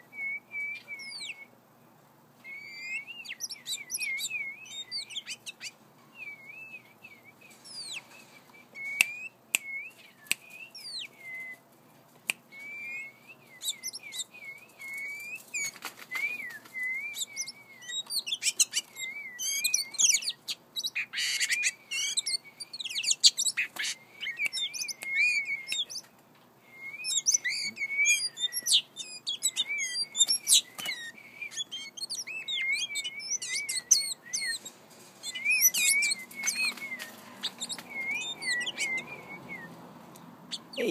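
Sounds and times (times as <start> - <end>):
bird singing warble: 0.0 - 1.5, 2.5 - 11.6, 12.6 - 26.1, 26.8 - 39.8, 40.5 - 40.9.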